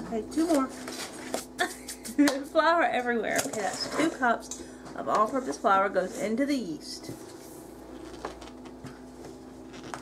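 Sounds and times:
woman speaking: 0.0s - 0.8s, 2.2s - 7.2s.

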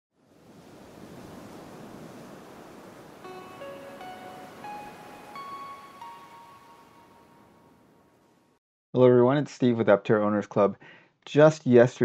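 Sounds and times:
surf-like rushing noise: 0.3s - 6.7s
bell-like notes climbing: 3.2s - 8.1s.

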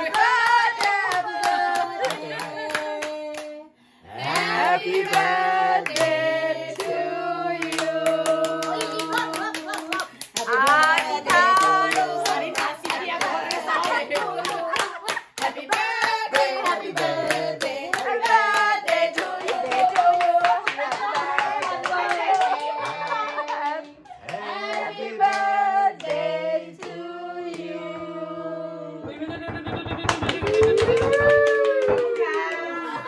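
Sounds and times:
group singing birthday song: 0.0s - 29.4s
hands clapping in time: 29.8s - 32.7s.

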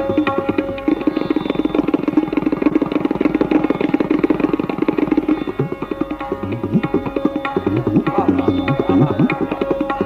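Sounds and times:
tabla rapid roll: 0.0s - 10.0s.

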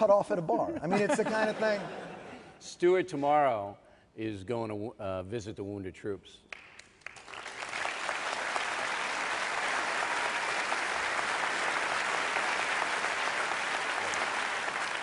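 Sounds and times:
audience applauding: 6.5s - 15.0s.

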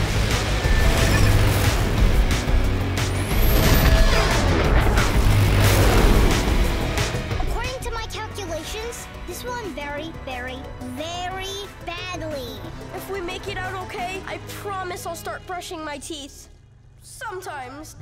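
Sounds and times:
racing car engine: 0.0s - 7.9s
cartoon action music: 0.0s - 15.5s.

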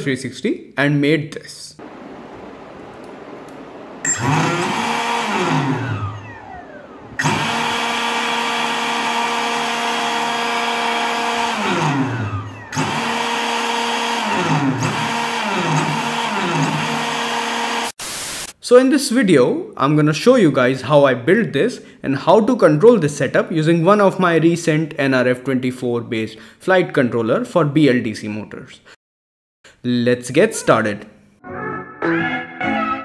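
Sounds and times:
motor spinning with high whine: 1.8s - 17.9s.

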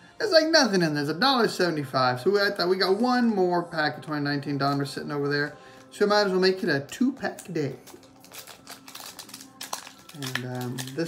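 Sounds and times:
foil wrapper crinkling and tearing: 4.6s - 11.0s.

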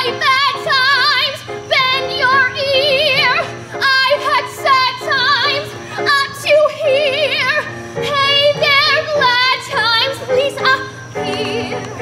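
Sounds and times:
girl singing with vibrato: 0.0s - 12.0s
musical accompaniment: 0.0s - 12.0s.

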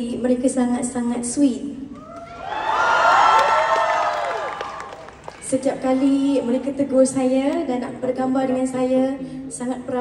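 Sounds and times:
concert audience cheering: 2.0s - 5.4s.

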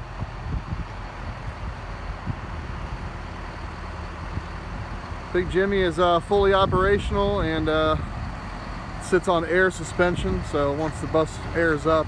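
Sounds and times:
diesel bus engine idling: 0.0s - 12.0s.

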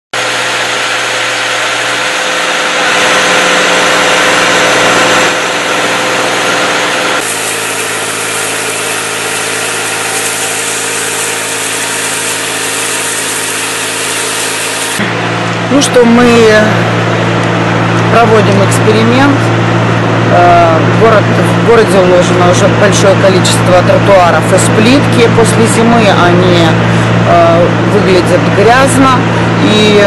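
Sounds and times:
pump motor droning: 0.1s - 30.0s
high-pressure water jet hissing: 0.2s - 15.0s.

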